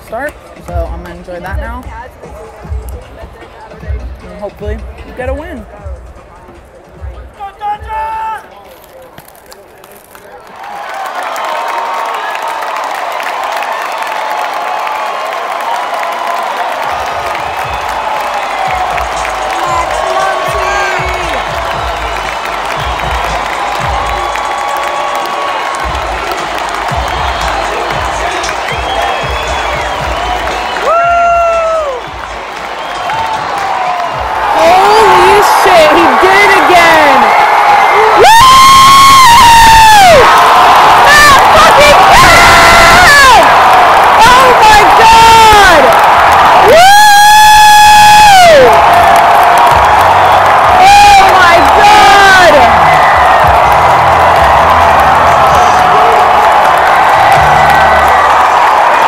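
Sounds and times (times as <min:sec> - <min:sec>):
stadium crowd cheering: 0:05.2 - 0:59.0.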